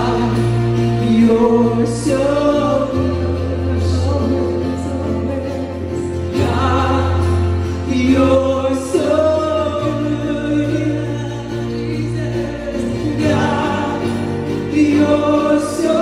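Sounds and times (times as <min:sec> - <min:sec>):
acoustic guitar: 0:00.0 - 0:16.0
drums: 0:00.0 - 0:16.0
keyboard: 0:00.0 - 0:16.0.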